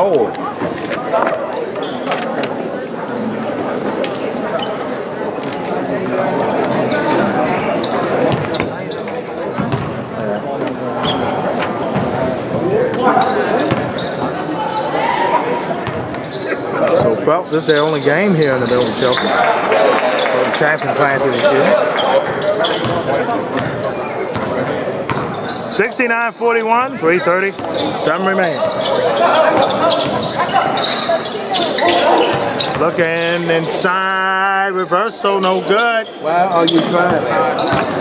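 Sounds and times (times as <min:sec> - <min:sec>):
hubbub of voices: 0:00.0 - 0:38.0
sneakers squeaking on hardwood: 0:01.0 - 0:02.3, 0:07.8 - 0:15.0, 0:20.8 - 0:25.9, 0:26.8 - 0:33.0, 0:34.9 - 0:38.0
basketball bouncing on wooden floor: 0:09.6 - 0:10.0.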